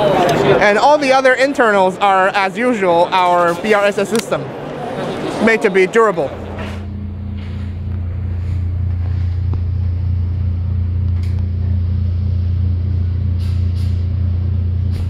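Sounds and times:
deep droning hum: 0:06.3 - 0:15.0.

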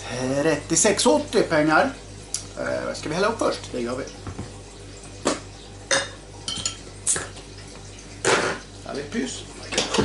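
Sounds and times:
glassware clinking: 0:05.9 - 0:06.9.

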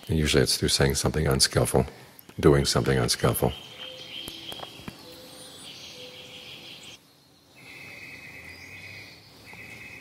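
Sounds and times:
insects trilling: 0:02.5 - 0:10.0.

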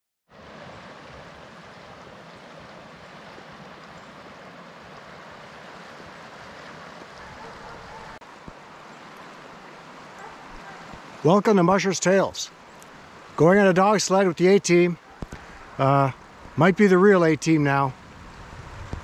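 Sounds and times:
river water rushing: 0:00.3 - 0:19.0.

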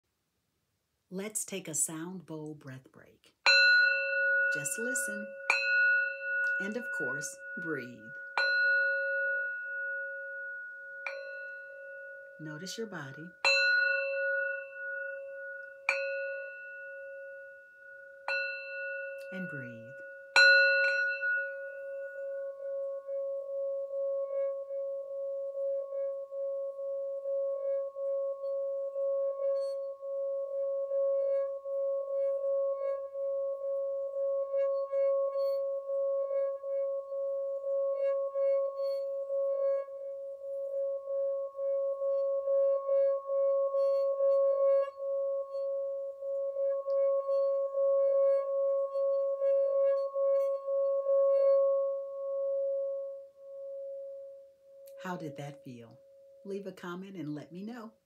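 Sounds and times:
singing bowl struck: 0:03.5 - 0:12.7, 0:13.3 - 0:55.0
singing bowl humming: 0:03.5 - 0:55.2, 0:55.9 - 0:56.6.

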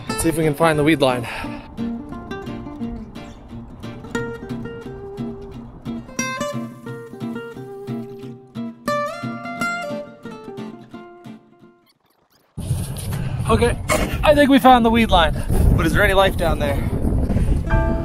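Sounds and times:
plucked acoustic guitar melody: 0:00.0 - 0:12.5, 0:17.7 - 0:18.0
outdoor noise: 0:00.0 - 0:18.0.

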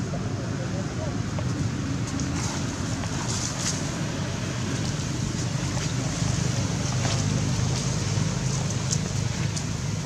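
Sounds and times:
outdoor rumble and hiss: 0:00.0 - 0:10.0.

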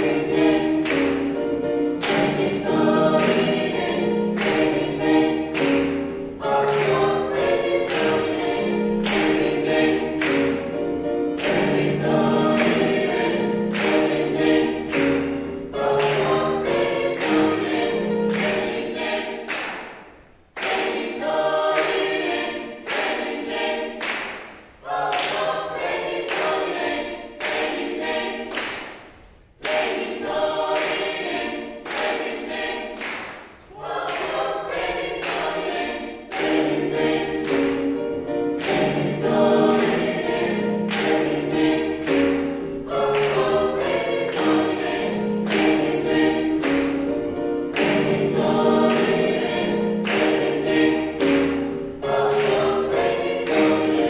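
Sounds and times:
choir singing gospel song: 0:00.0 - 0:54.0
rhythmic handclaps: 0:00.0 - 0:54.0.

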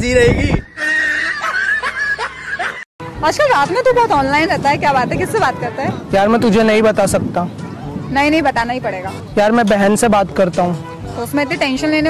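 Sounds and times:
young man laughing: 0:00.8 - 0:02.8.

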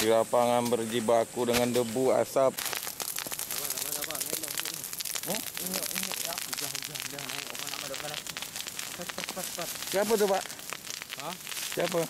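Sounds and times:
fire crackling: 0:00.0 - 0:12.0.

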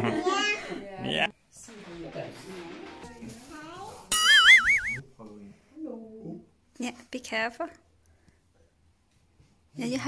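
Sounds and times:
warbling cartoon chime: 0:04.1 - 0:05.0.

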